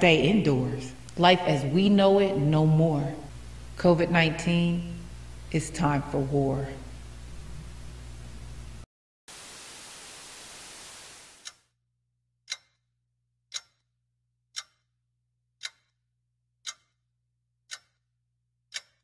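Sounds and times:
faint low hum: 0.0 - 8.8
steady hiss: 7.0 - 11.5
clock ticking: 12.5 - 12.8, 13.5 - 13.8, 14.5 - 14.9, 15.6 - 16.0, 16.6 - 17.0, 17.7 - 18.0, 18.7 - 19.0.

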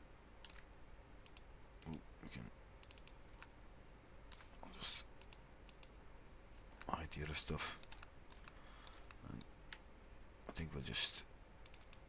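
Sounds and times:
computer mouse and keyboard clicks: 0.4 - 2.0, 2.8 - 3.5, 4.3 - 4.6, 5.2 - 6.0, 6.7 - 9.8, 11.6 - 12.0.

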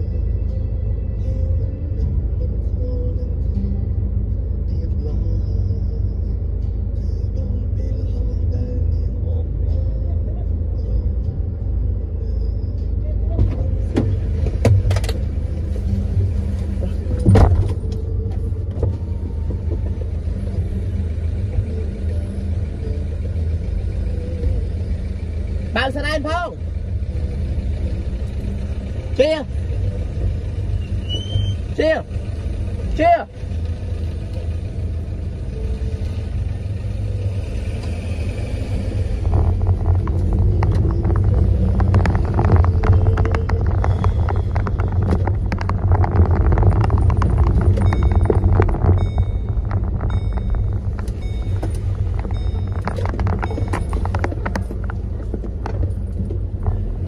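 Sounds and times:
car cabin engine rumble: 0.0 - 57.0.

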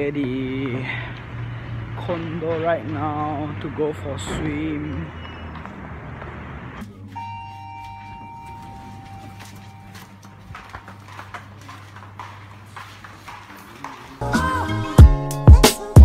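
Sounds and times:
footsteps on hard floor: 5.2 - 14.2
electronic chime: 7.1 - 10.4.

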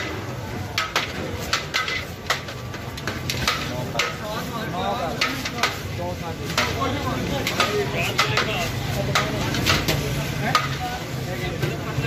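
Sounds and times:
ladle stirring and scraping pot: 0.7 - 11.3.

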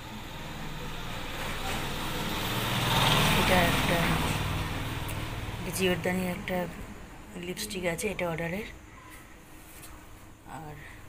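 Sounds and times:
road vehicle passing by: 0.0 - 7.6.

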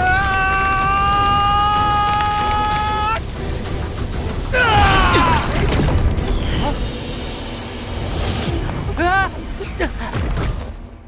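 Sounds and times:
high falling cry: 0.0 - 3.2, 4.5 - 5.7.

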